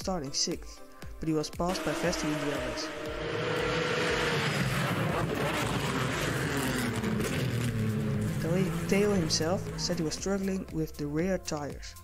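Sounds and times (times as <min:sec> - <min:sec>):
racing car engines: 0:01.7 - 0:11.0.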